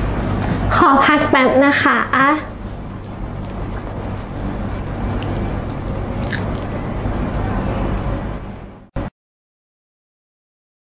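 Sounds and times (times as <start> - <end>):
steady low hum: 0.0 - 9.1
person chewing ice cream cone: 2.5 - 7.0.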